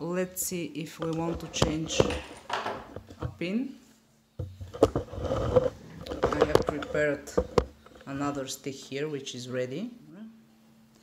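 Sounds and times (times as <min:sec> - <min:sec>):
person speaking: 0:00.0 - 0:02.5, 0:05.9 - 0:10.4.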